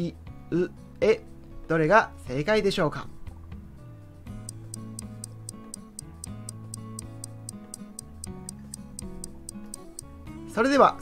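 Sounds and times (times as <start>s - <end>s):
soft background music with bass: 0.0s - 11.0s
fast clock-like ticking: 4.4s - 10.1s.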